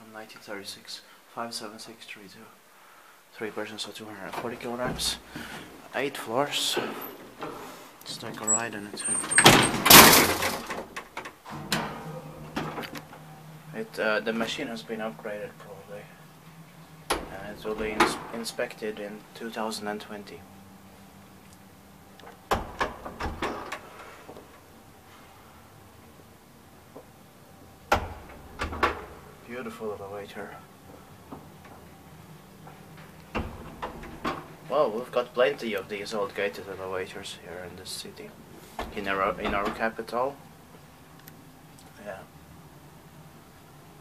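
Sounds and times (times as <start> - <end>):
elevator drive humming: 3.5 - 44.0
elevator knocks: 8.4 - 19.0, 22.3 - 24.7, 27.8 - 29.4, 30.9 - 34.7, 38.8 - 40.0
metal scissor gate clattering shut: 8.5 - 13.3.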